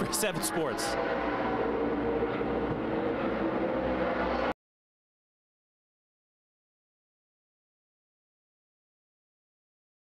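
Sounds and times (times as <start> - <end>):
level hum tones: 0.0 - 4.5
continuous mechanical drone: 0.0 - 4.6.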